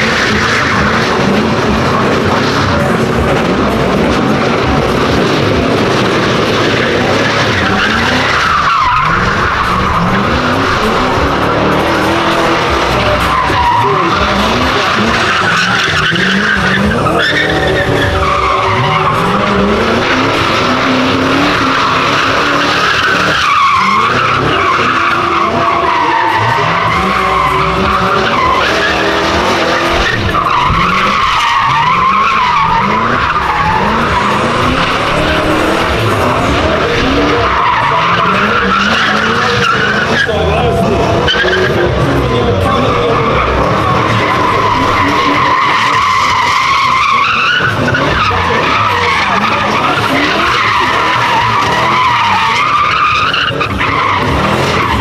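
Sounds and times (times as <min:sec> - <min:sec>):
car engine revving: 0:00.0 - 0:55.0
tyres squealing: 0:00.0 - 0:55.0.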